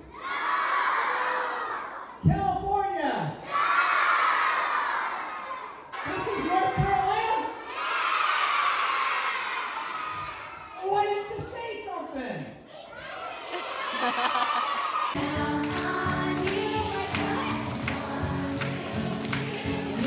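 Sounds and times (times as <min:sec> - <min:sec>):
children shouting and cheering: 0:00.0 - 0:02.2, 0:03.4 - 0:10.8, 0:12.6 - 0:20.0.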